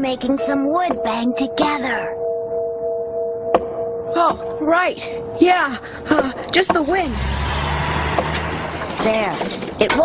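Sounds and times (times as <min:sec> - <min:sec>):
truck engine hum: 0:04.4 - 0:09.8.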